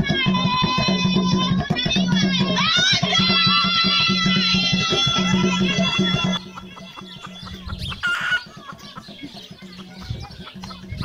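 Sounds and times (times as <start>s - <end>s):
chicken clucking: 4.9s - 11.0s.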